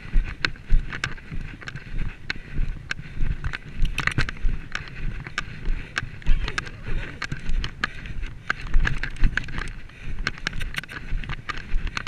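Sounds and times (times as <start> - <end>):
horse hoofbeats on grass: 0.0 - 12.0
wind noise on microphone: 0.0 - 12.0.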